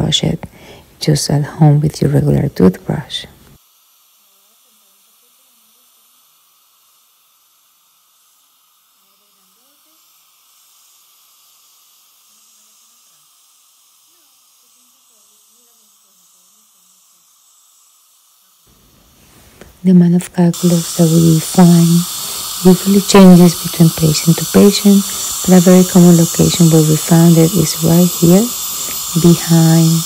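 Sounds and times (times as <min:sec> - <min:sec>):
faint steady hiss: 0:00.0 - 0:30.0.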